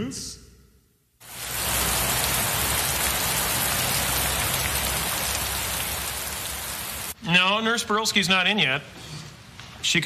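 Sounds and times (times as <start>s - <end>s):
heavy rain falling: 1.2s - 7.2s.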